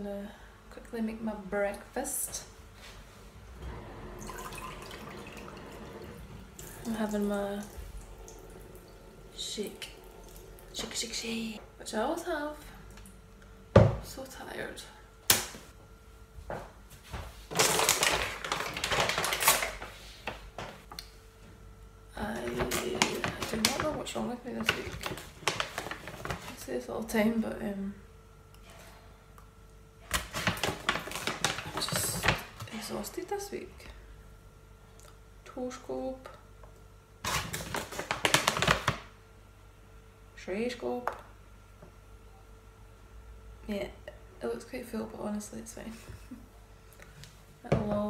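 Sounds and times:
plastic pouch crinkling: 17.5s - 19.9s, 22.4s - 26.6s, 30.1s - 32.5s, 37.3s - 39.0s.

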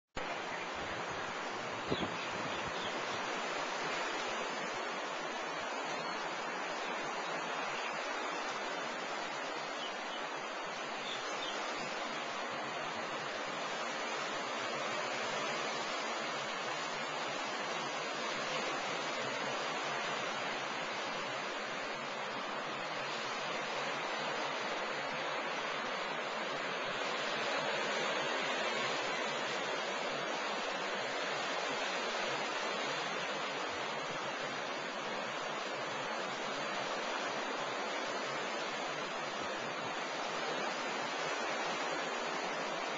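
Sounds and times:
ocean surf rushing: 0.2s - 42.9s.

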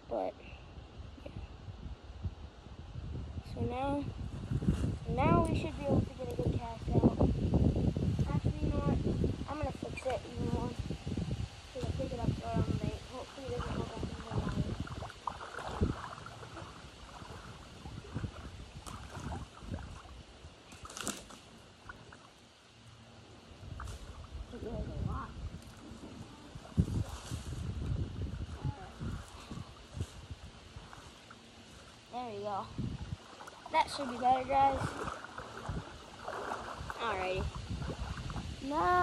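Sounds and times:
water splashing: 11.7s - 39.0s
boots wading through water: 11.8s - 38.5s.

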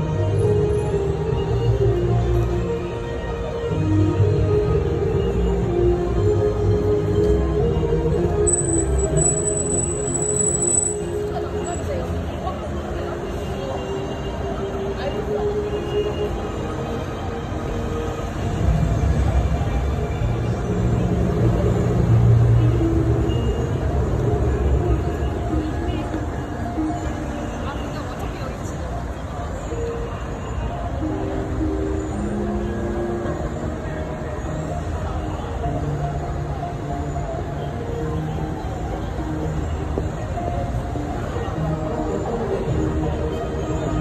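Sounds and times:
road rumble: 0.0s - 44.0s.

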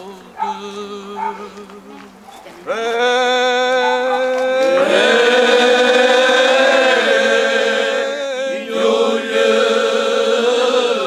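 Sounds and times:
male choir singing: 0.0s - 11.0s.

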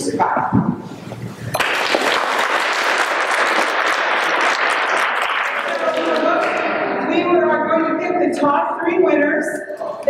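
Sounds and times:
audience applauding: 1.6s - 6.8s.

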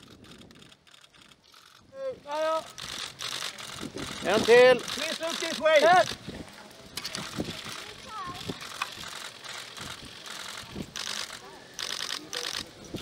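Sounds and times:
camera shutters firing in bursts: 0.0s - 6.3s, 6.9s - 13.0s.

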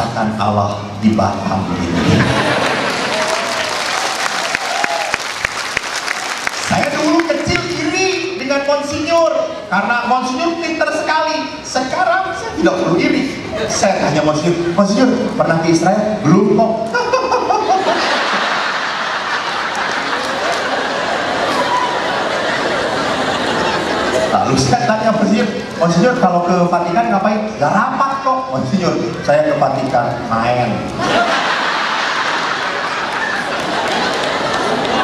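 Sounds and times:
audience applauding: 2.2s - 8.3s, 18.1s - 23.8s, 31.2s - 35.0s.

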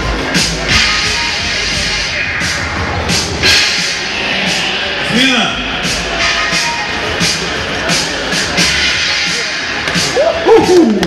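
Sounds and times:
loud background music: 0.0s - 11.0s.

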